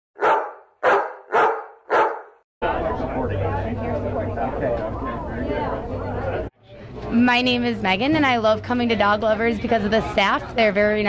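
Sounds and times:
dog barking: 0:00.2 - 0:02.4.

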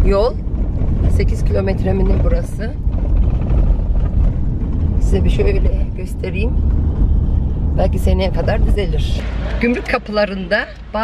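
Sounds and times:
tyres rolling over cobblestones: 0:00.0 - 0:11.0.

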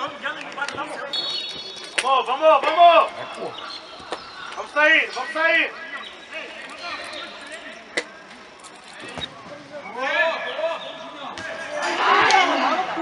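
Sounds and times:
players and spectators shouting: 0:00.0 - 0:13.0.

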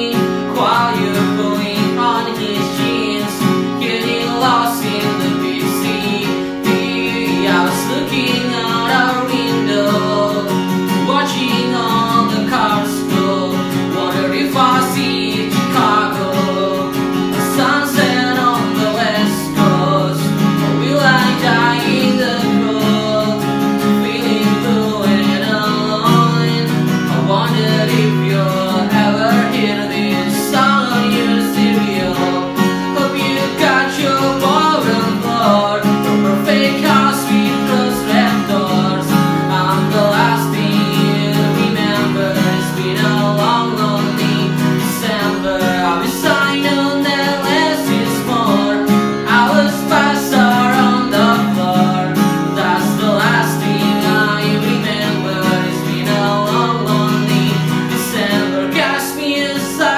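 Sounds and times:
man singing: 0:00.0 - 0:59.9
strummed acoustic guitar: 0:00.0 - 0:59.9.

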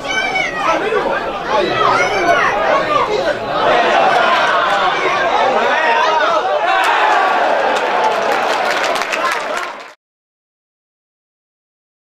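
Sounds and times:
voices shouting and talking: 0:00.0 - 0:09.8.

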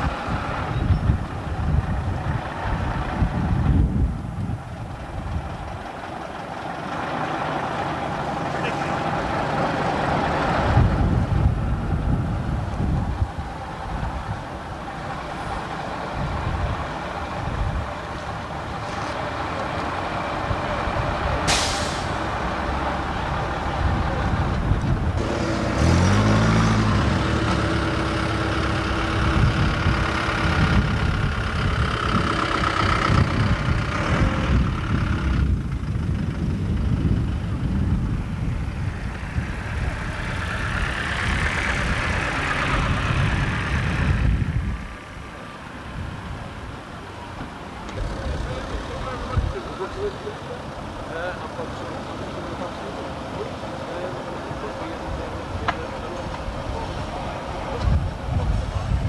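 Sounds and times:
wind rumbling on microphone: 0:00.0 - 0:06.6, 0:09.1 - 0:50.1, 0:55.0 - 0:59.0
diesel bus engines running: 0:00.0 - 0:59.0
air brakes hissing: 0:21.4 - 0:22.4.

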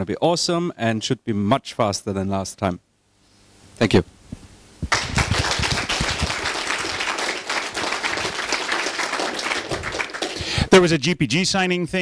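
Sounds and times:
audience applauding: 0:04.9 - 0:10.8.

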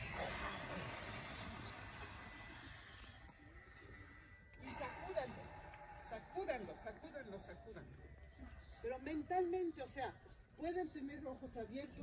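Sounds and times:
people exhaling forcefully: 0:00.0 - 0:03.3.

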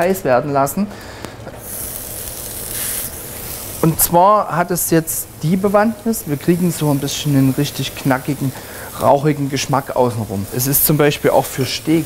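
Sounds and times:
meat sizzling in a hot pan: 0:01.6 - 0:12.0.

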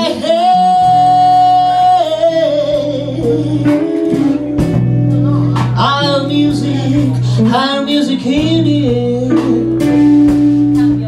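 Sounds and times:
woman singing: 0:00.0 - 0:04.6, 0:05.2 - 0:11.0
drums: 0:00.0 - 0:11.0
electric guitars: 0:00.0 - 0:11.0.

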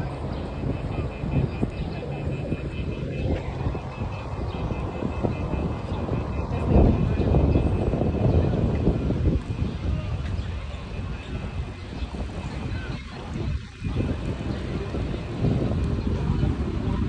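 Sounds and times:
city traffic rumble: 0:00.0 - 0:17.0.

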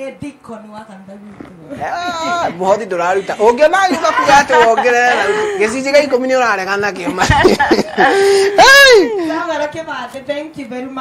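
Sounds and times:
woman speaking: 0:00.0 - 0:07.1, 0:09.1 - 0:11.0
woman laughing: 0:01.7 - 0:05.8, 0:07.0 - 0:09.3
woman wailing into microphone: 0:08.0 - 0:09.3.

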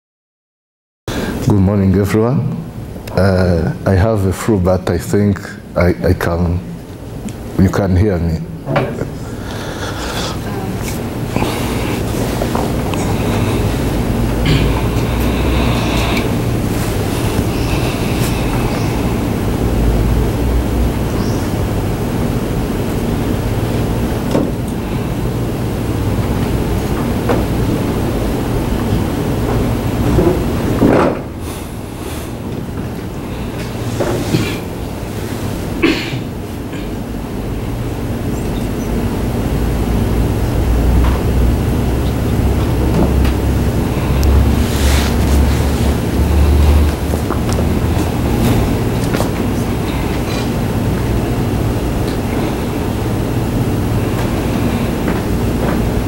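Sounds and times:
low room rumble: 0:01.1 - 0:56.0.

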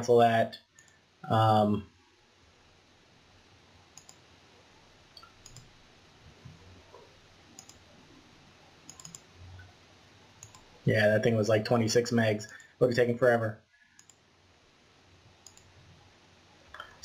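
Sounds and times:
faint room hiss: 0:00.0 - 0:17.0
computer mouse clicks: 0:04.0 - 0:04.2, 0:05.2 - 0:05.7, 0:07.5 - 0:07.8, 0:08.9 - 0:09.7, 0:10.4 - 0:10.7, 0:14.0 - 0:14.2, 0:15.4 - 0:15.7.

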